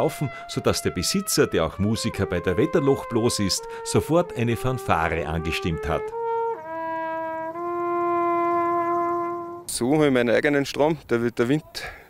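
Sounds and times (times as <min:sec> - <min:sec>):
solo trumpet fanfare: 0:00.0 - 0:09.8.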